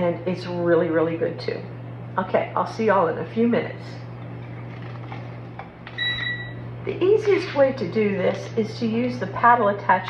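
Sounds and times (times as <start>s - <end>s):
low steady hum: 0.0s - 10.0s
electronic beep: 6.0s - 6.5s.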